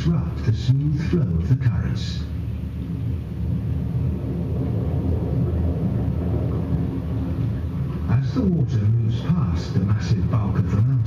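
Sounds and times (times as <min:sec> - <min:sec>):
deep steady rumble over speakers: 0:00.0 - 0:11.0.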